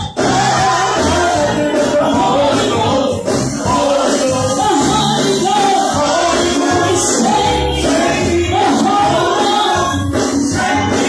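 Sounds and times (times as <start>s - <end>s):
instrumental backing with bass line: 0.0s - 11.0s
women singing gospel in harmony: 0.0s - 11.0s.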